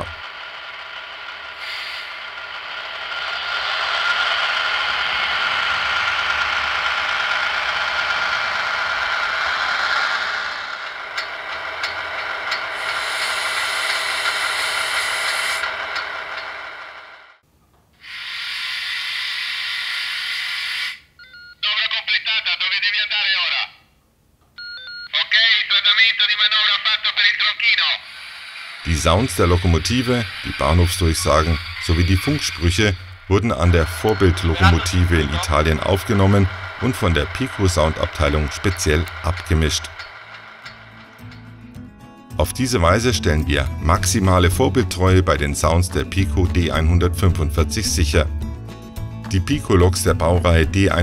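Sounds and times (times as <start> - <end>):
recorded voice: 0.0 - 0.2, 21.6 - 23.9, 25.1 - 28.1, 28.8 - 40.0, 42.4 - 48.4, 49.3 - 51.0
diesel engine running: 0.0 - 17.4, 26.8 - 51.0.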